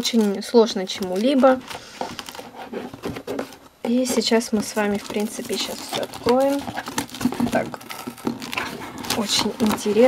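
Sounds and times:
cellophane crinkling: 0:00.0 - 0:10.0
cardboard box rustling: 0:00.1 - 0:10.0.

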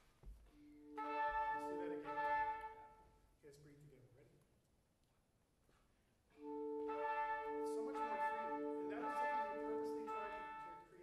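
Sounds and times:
wind ensemble playing chords: 0:00.8 - 0:02.9, 0:06.4 - 0:11.0.

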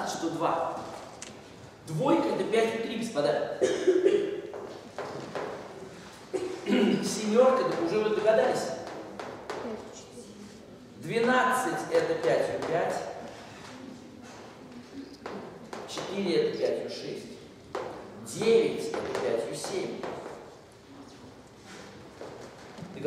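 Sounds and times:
man speaking: 0:00.0 - 0:01.0, 0:01.8 - 0:03.7, 0:06.6 - 0:08.9, 0:11.0 - 0:13.2, 0:15.9 - 0:17.5, 0:18.2 - 0:20.1
chalk tapping on blackboard: 0:07.6 - 0:09.7, 0:12.0 - 0:13.1.

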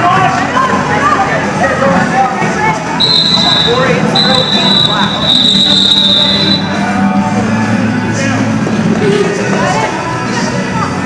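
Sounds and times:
crowd chatter in hall: 0:00.0 - 0:11.0
referee's whistle blasts: 0:03.0 - 0:06.8.

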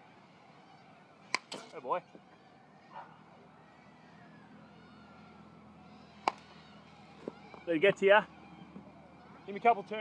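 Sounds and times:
baseball bat hitting ball: 0:01.3 - 0:01.7, 0:06.2 - 0:06.5.

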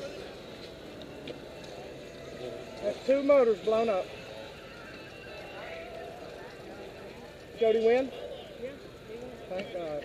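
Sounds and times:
distant people talking: 0:00.0 - 0:10.0
outdoor background noise: 0:00.0 - 0:10.0.

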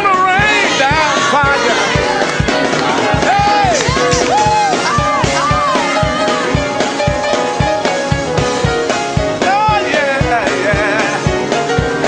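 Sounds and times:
gospel praise music: 0:00.0 - 0:12.0.

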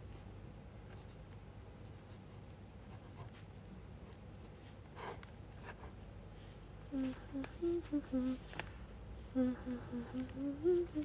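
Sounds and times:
woman humming a tune: 0:06.9 - 0:08.6, 0:09.3 - 0:11.0.

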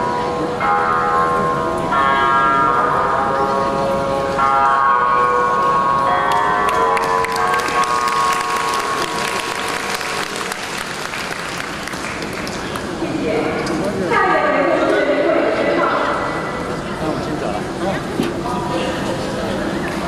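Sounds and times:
audience applause: 0:06.7 - 0:13.0.

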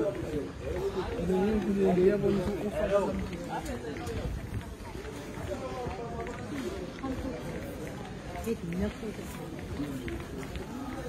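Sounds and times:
indistinct voices of shoppers: 0:00.0 - 0:11.0.

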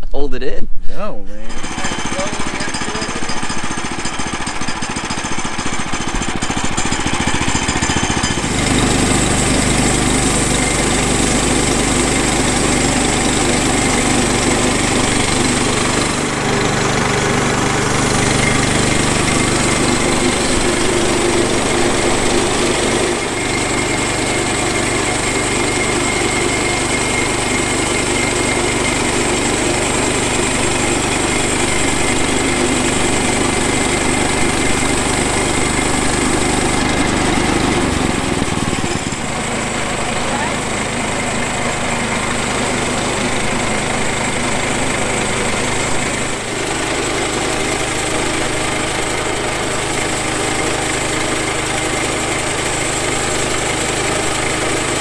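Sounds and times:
small gasoline engine running: 0:01.5 - 0:55.0
band blade sawing log: 0:05.9 - 0:55.0.

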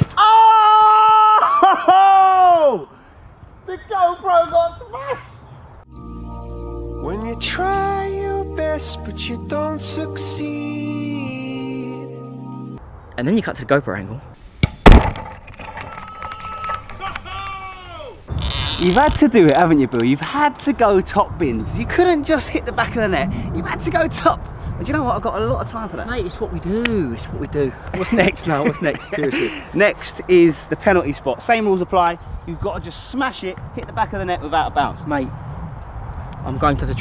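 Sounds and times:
excited shouts: 0:00.2 - 0:02.9, 0:16.1 - 0:18.3
man yelling: 0:00.2 - 0:02.9, 0:16.2 - 0:18.2
drawn-out vocal exclamation: 0:16.1 - 0:18.3.

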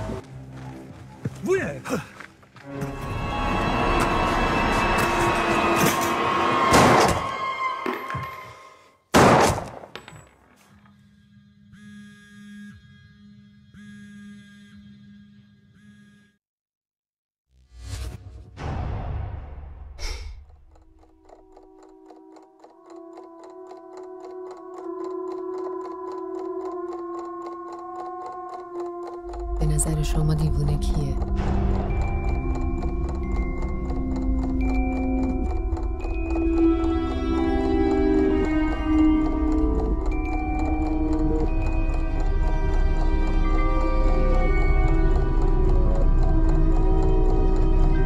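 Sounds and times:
droning horror score: 0:02.6 - 0:08.0, 0:18.7 - 0:48.0
clock-like ticking: 0:20.0 - 0:48.0
sustained tones: 0:21.7 - 0:48.0.

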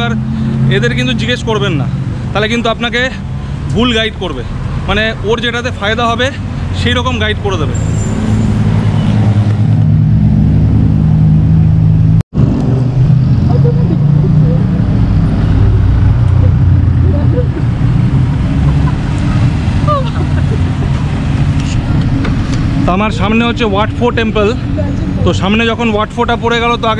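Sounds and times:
road traffic: 0:00.0 - 0:26.9
vehicle engine rumbling: 0:00.0 - 0:26.9.

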